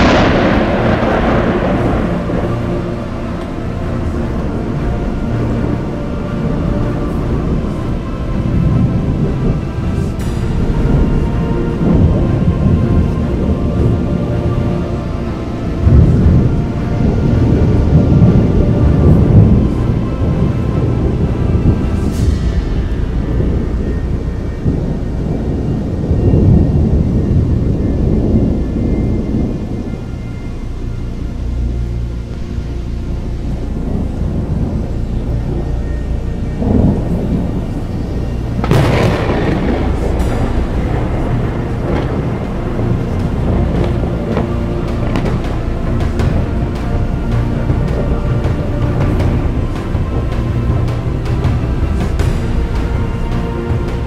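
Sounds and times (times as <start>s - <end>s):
thunder crack: 0.0s - 31.3s, 32.3s - 54.0s
background music: 0.0s - 54.0s
thunder rumbling: 0.0s - 54.0s.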